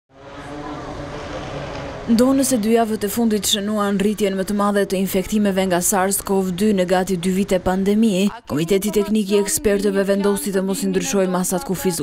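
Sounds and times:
faint voices of passers-by: 0.1s - 2.1s
traffic noise: 0.1s - 12.0s.

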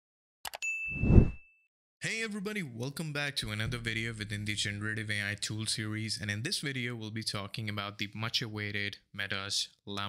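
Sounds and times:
notification bell ding: 0.5s - 1.4s
low whoosh: 1.0s - 1.4s.

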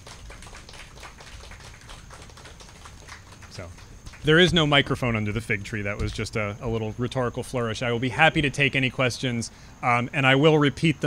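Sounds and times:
audience applause: 0.0s - 5.1s.

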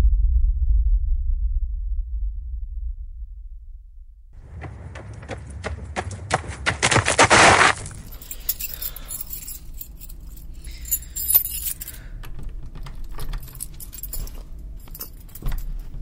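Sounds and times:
keys jangling: 7.6s - 16.0s.

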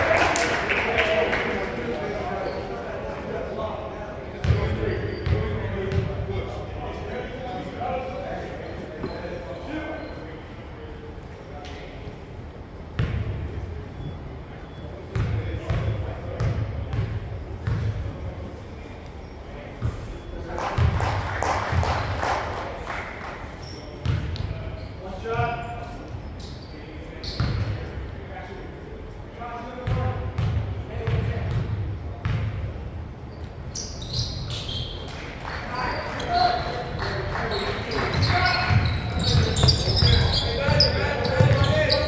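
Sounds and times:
echoing voices: 35.2s - 42.0s.

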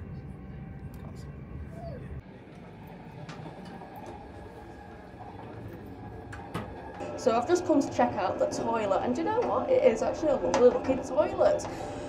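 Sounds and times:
electric train rumbling: 0.0s - 12.0s.

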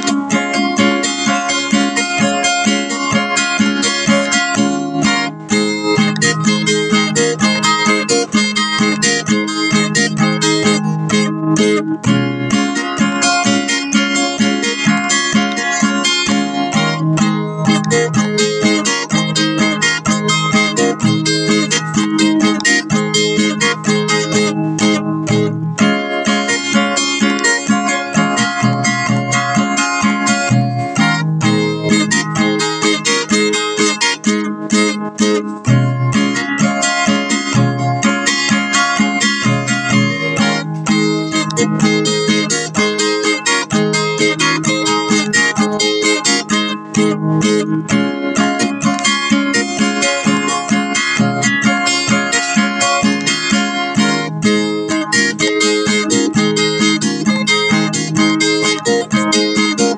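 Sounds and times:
acoustic guitar music: 0.0s - 59.9s.

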